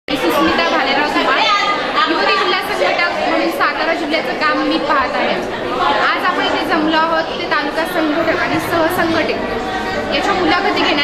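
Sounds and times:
woman talking: 0.1 - 11.0.

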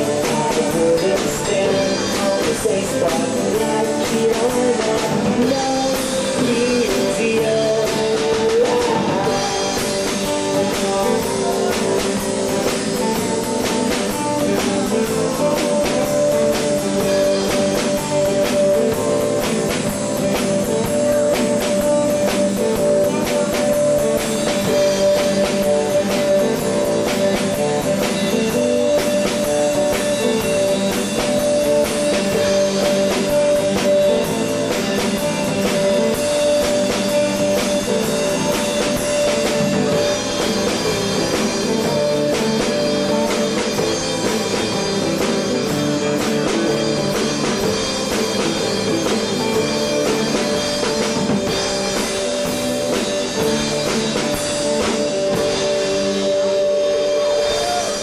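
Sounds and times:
acoustic guitars playing: 0.0 - 58.0
drum kit beat: 0.0 - 58.0.

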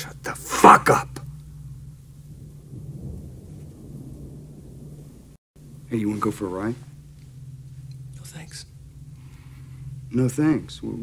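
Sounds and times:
faint steady hum: 0.0 - 11.0
low rumbling drone: 0.0 - 11.0.

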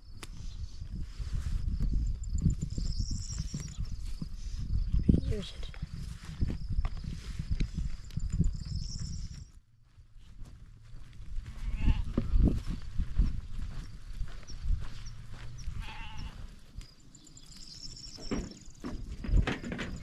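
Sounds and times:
wind rumbling on microphone: 0.0 - 20.0
sheep bleating: 11.5 - 12.3, 15.8 - 16.5.

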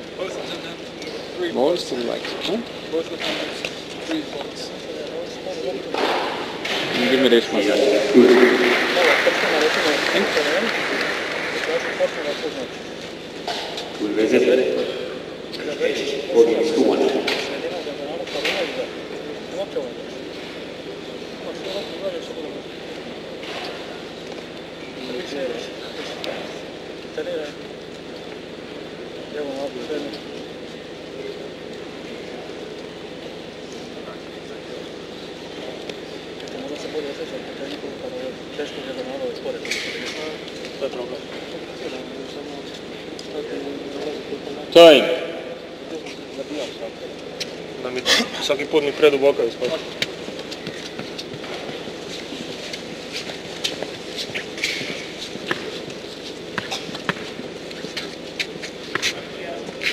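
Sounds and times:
indistinct voices talking: 7.5 - 12.8, 14.0 - 18.4.

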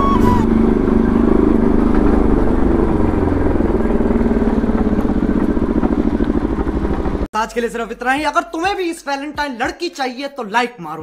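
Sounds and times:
motorcycle engine running: 0.0 - 7.3
background music: 7.4 - 11.0.

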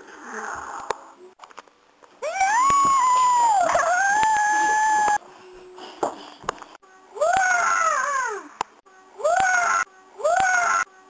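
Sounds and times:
high-pitched howling cry: 2.2 - 5.2, 7.2 - 8.5, 9.2 - 10.9.

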